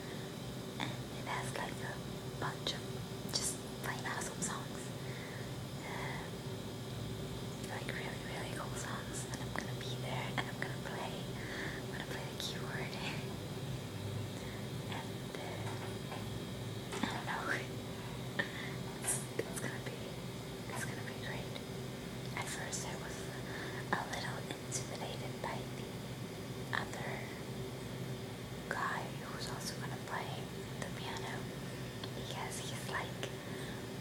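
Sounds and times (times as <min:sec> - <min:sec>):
low hum: 0:00.0 - 0:34.0
woman whispering: 0:00.8 - 0:04.9, 0:05.8 - 0:06.3, 0:07.6 - 0:13.4, 0:14.9 - 0:15.8, 0:16.9 - 0:17.7, 0:18.4 - 0:21.6, 0:22.3 - 0:25.8, 0:26.7 - 0:27.4, 0:28.7 - 0:31.5, 0:32.1 - 0:33.4.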